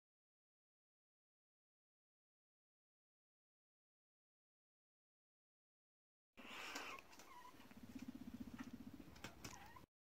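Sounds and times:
guinea pig rumbling purr: 6.4s - 9.9s.

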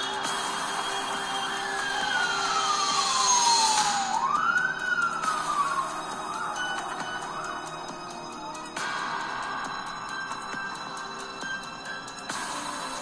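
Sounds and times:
ambulance siren wailing: 0.0s - 13.0s.

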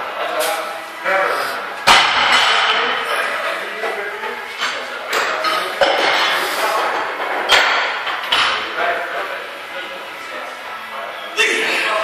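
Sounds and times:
background hubbub: 0.0s - 12.0s.

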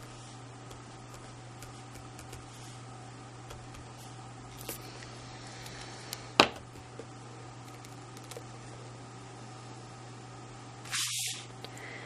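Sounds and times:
steady low hum: 0.0s - 12.0s
card sliding on mat: 10.9s - 11.5s.

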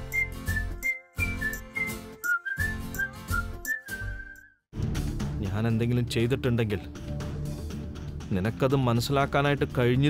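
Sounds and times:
whistle-like jingle melody: 0.0s - 4.6s.

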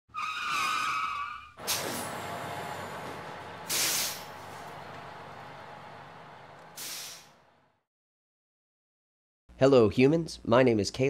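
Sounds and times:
wavering tyre squeal: 0.1s - 4.8s
loud short hiss: 1.6s - 2.4s, 3.6s - 4.9s, 6.8s - 7.4s
sharp burst: 1.6s - 6.0s.

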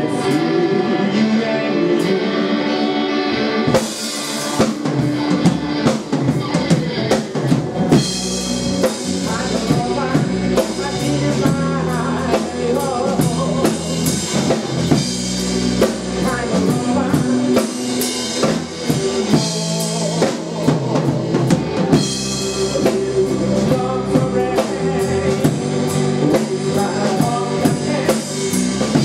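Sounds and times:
drum kit: 0.0s - 29.0s
live rock band playing: 0.0s - 29.0s.

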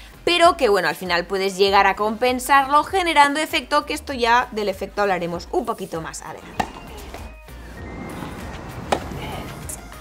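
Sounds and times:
background music: 0.0s - 10.0s
tennis ball struck by racket: 6.4s - 10.0s.

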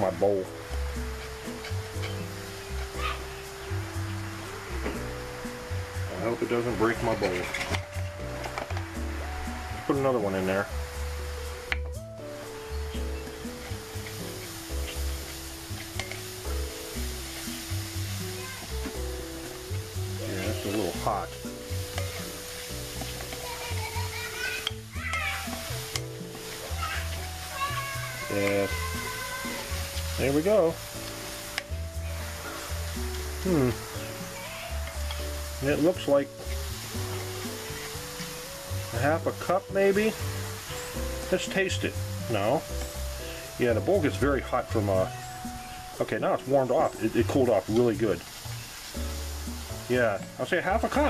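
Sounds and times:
background music: 0.0s - 51.0s
fizzing hiss: 0.0s - 51.0s
bass line: 31.7s - 35.9s.

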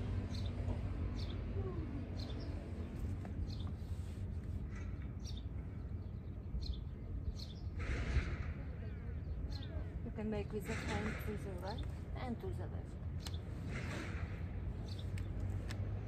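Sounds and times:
low outdoor rumble: 0.0s - 16.0s
small birds chirping: 0.0s - 16.0s.

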